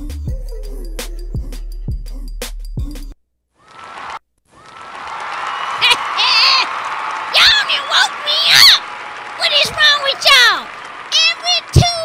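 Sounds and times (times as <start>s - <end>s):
hip-hop music: 0.0s - 3.2s
crowd whooping and shouting: 3.6s - 12.0s
crowd applause: 3.7s - 12.0s.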